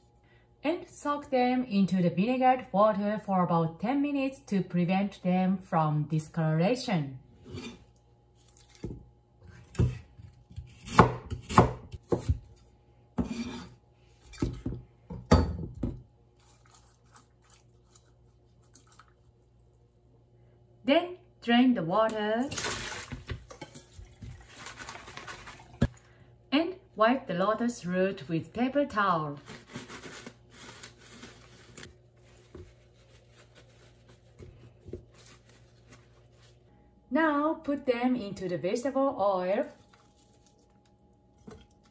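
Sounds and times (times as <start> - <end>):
knife scraping on cutting board: 7.4 - 7.9, 13.2 - 14.6
paper towel rustling and patting: 29.4 - 36.6.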